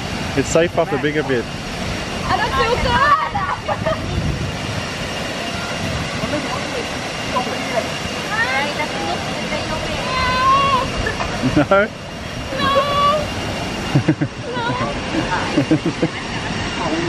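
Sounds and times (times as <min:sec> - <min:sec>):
waterfall rushing: 0:00.0 - 0:17.0.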